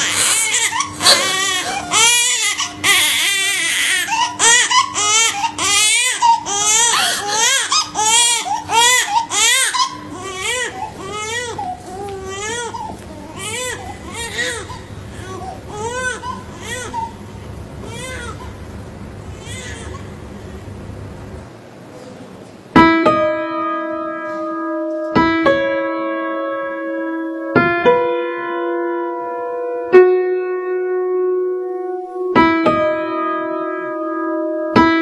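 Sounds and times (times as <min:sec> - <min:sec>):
newborn baby crying: 0:00.0 - 0:17.2, 0:17.8 - 0:18.6, 0:19.3 - 0:20.2.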